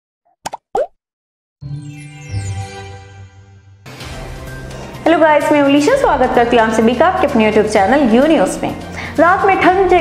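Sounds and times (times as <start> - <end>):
rising pop: 0.4 - 1.0.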